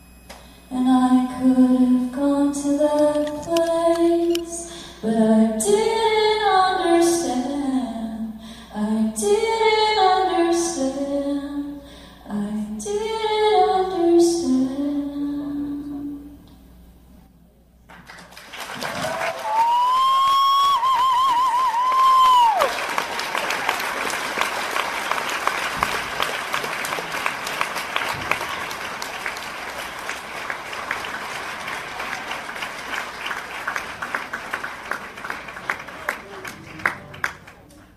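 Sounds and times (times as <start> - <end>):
woman singing: 0.7 - 16.4
audience applause: 17.9 - 37.9
loud warbling whistle: 19.4 - 22.7.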